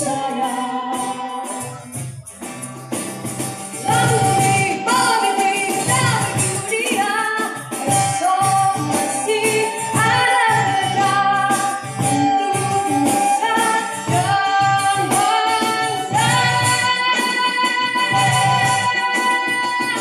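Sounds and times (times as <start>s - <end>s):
woman singing: 0.0s - 2.2s, 3.8s - 20.0s
acoustic guitar: 0.0s - 20.0s
steady beat: 0.0s - 20.0s
violin: 3.6s - 20.0s.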